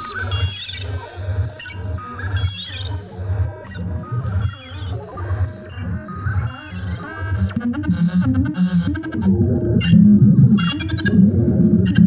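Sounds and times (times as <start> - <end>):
pulsing bass synth: 4.6 - 12.0.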